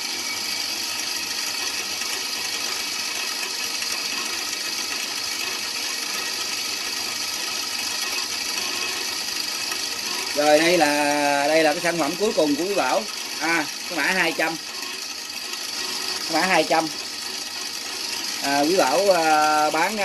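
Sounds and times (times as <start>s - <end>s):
bench grinder motor whine: 0.0s - 20.0s.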